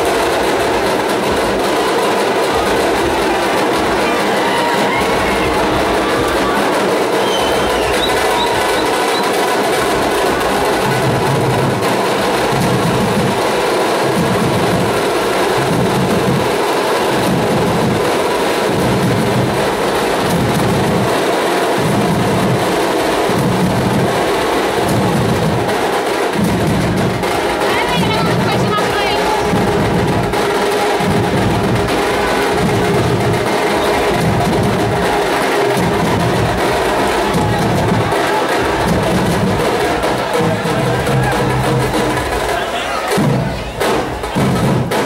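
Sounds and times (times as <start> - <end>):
procession drumming: 0.0 - 45.0.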